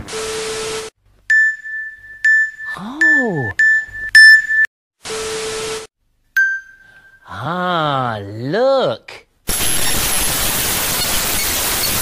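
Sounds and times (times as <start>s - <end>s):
bright ding: 6.4s - 7.2s
tv static hiss: 9.5s - 12.0s.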